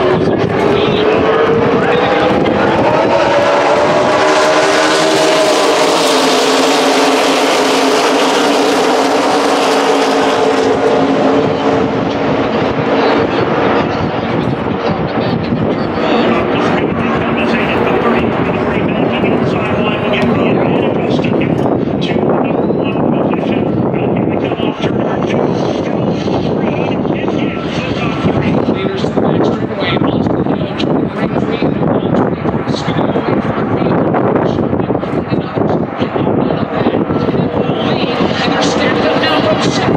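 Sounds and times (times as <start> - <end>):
race car engines passing: 0.0 - 39.9.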